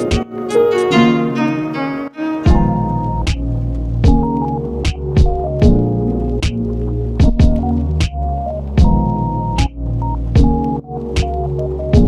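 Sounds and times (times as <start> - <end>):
background music: 0.0 - 12.0
sharp drum hits: 2.5 - 3.4.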